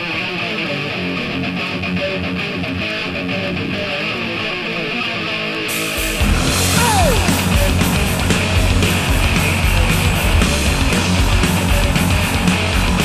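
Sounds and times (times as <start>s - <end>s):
electric guitar picked notes: 0.0s - 13.0s.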